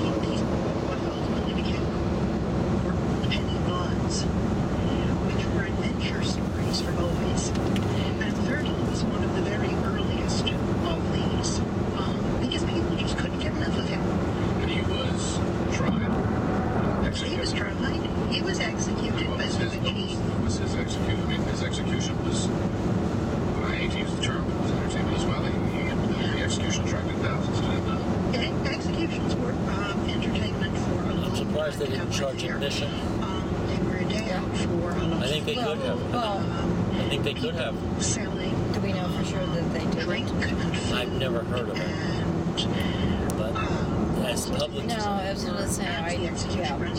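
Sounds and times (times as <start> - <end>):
muffled talk: 0.0 - 2.0, 2.8 - 22.7, 23.5 - 46.9
road and tyre noise in car: 0.0 - 46.9.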